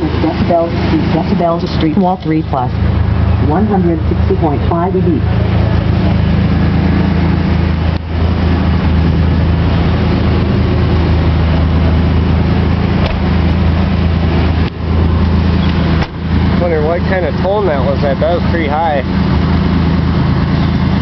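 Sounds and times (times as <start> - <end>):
loud distorted subwoofer bass: 0.0 - 21.0.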